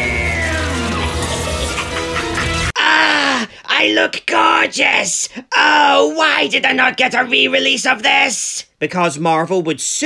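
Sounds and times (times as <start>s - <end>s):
person speaking: 2.8s - 10.0s.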